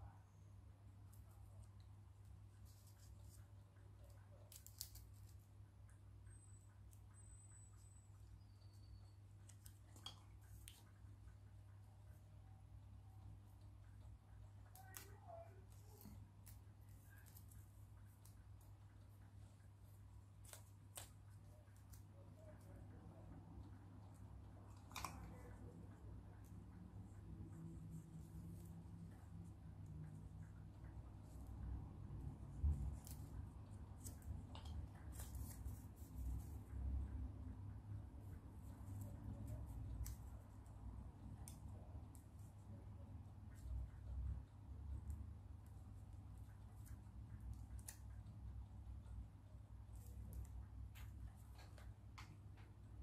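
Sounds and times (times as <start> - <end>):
steady low hum: 0.0 - 53.0
paper and plastic straw rustling: 32.6 - 36.8.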